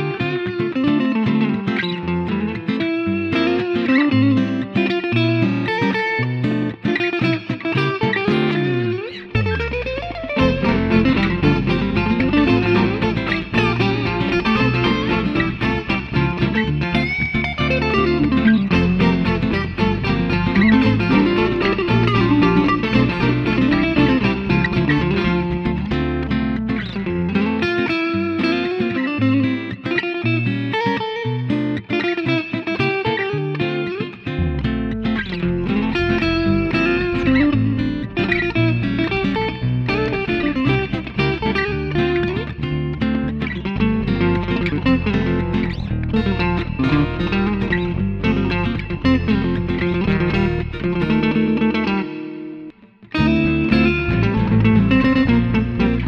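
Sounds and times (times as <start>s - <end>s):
electric guitar melody: 0.0s - 56.0s
deep bass line: 9.4s - 27.4s, 34.4s - 51.7s, 53.2s - 56.0s.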